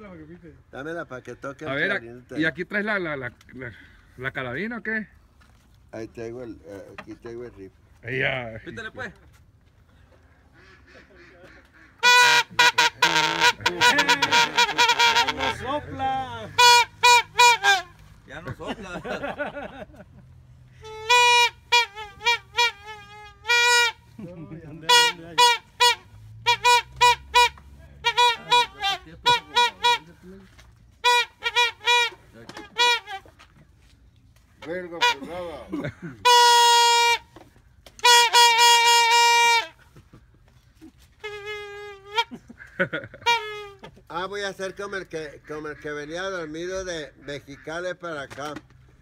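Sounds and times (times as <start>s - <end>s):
party horn honking: 12.0s - 18.3s, 20.7s - 33.6s, 34.6s - 44.1s.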